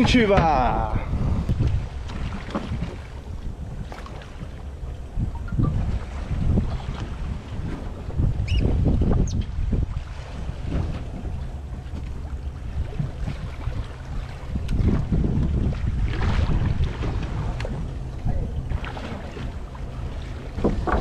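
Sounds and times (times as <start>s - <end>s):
water lapping against hull: 0.0s - 21.0s
wind buffeting microphone: 0.0s - 21.0s.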